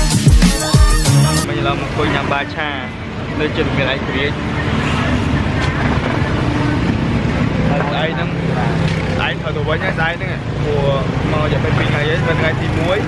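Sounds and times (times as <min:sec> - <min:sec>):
traffic rumble: 0:01.4 - 0:13.0
man talking: 0:09.2 - 0:13.0.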